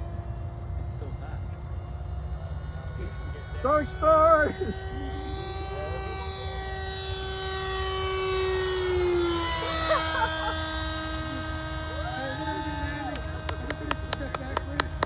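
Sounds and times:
model plane propeller humming: 0.0s - 15.0s.

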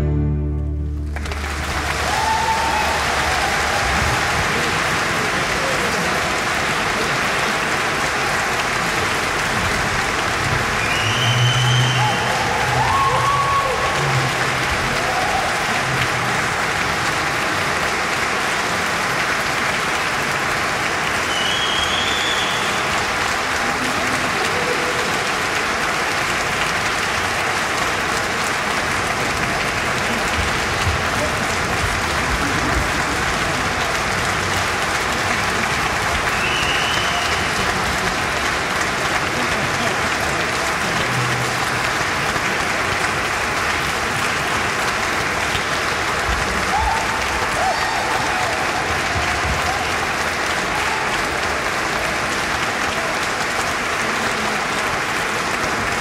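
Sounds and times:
audience applauding: 0.8s - 56.0s.

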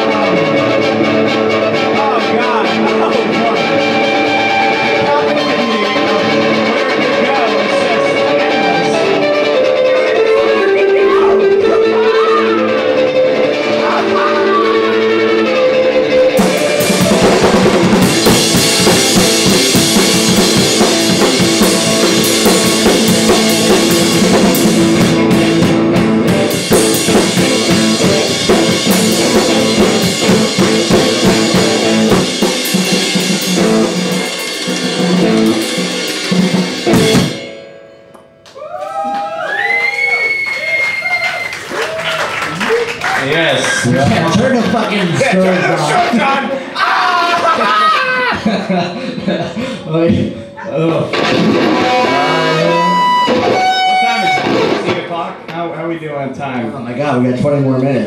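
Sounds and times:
wavering sliding notes: 0.0s - 38.4s, 50.6s - 55.0s
held guitar notes: 0.0s - 38.6s, 50.1s - 55.7s
drum kit with dense cymbals: 16.4s - 37.6s.

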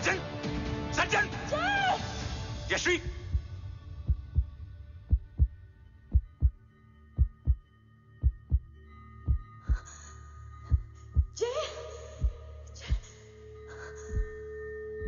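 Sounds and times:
steady low drone: 3.1s - 11.4s
heartbeat thumps: 3.2s - 9.9s, 10.7s - 11.4s, 12.2s - 13.1s, 14.1s - 14.4s.

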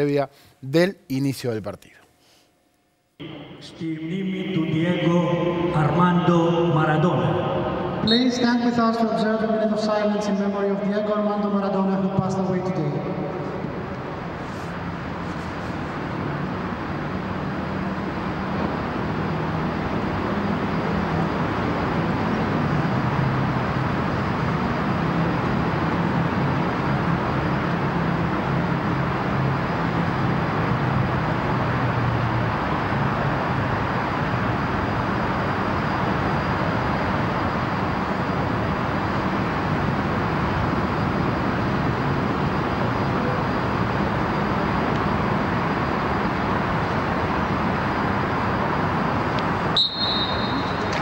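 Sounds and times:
stadium ambient hiss and rumble: 0.0s - 2.4s, 3.2s - 51.0s
referee's whistle blast: 8.0s - 8.5s, 49.7s - 51.0s.

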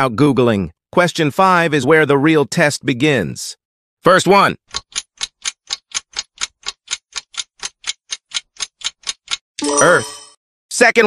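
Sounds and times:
clock ticking: 4.6s - 10.3s
short ringing chime: 9.6s - 10.4s
synthesized voice speaking: 9.6s - 11.0s.

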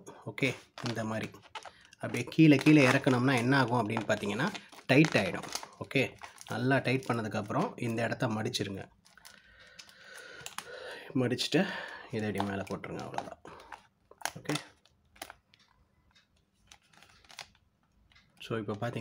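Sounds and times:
plastic bag crinkling: 0.4s - 19.0s.

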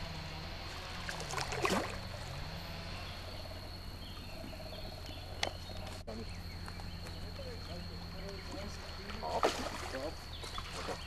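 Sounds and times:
fish splashing at water surface: 1.0s - 2.0s, 8.6s - 11.0s.

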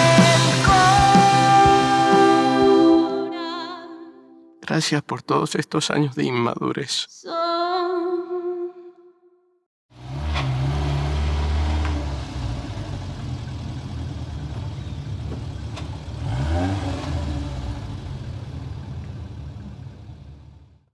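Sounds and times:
van engine running: 10.0s - 20.9s.

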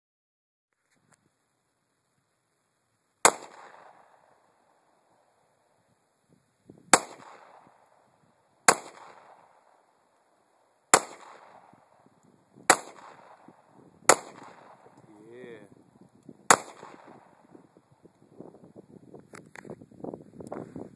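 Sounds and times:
pistol shots with echo: 3.2s - 4.3s, 6.9s - 7.9s, 8.7s - 9.8s, 10.9s - 12.0s, 12.7s - 15.0s, 16.5s - 17.5s.

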